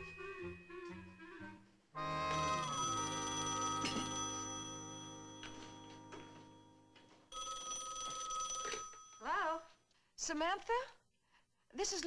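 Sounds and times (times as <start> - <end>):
telephone bell ringing: 2.0 - 9.4.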